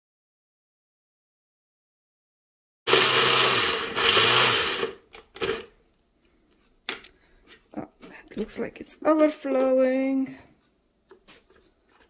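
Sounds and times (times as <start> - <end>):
electric chopper grinding: 2.9 - 5.6.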